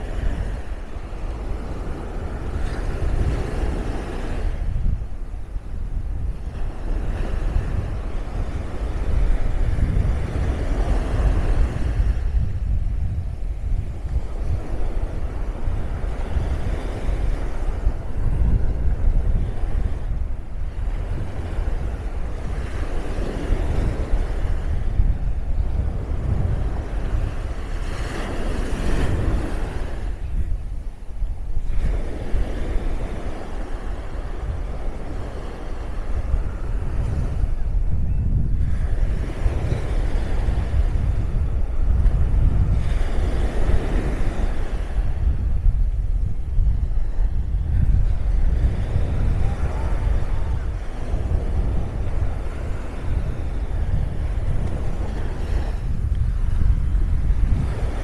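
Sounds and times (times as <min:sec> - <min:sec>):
surf washing up the sand: 0:00.0 - 0:58.0
wind rumble on microphone: 0:00.0 - 0:58.0.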